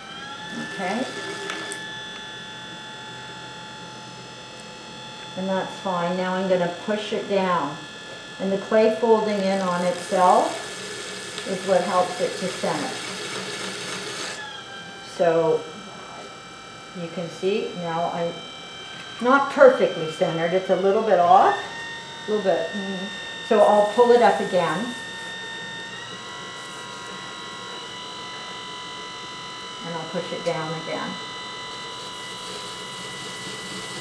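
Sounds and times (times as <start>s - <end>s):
pottery wheel humming: 0.0s - 34.0s.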